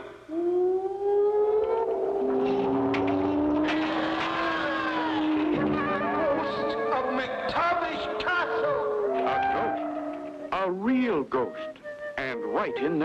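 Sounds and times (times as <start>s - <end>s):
ghostly wailing moans: 0.0s - 10.6s
lower moan: 0.3s - 10.6s.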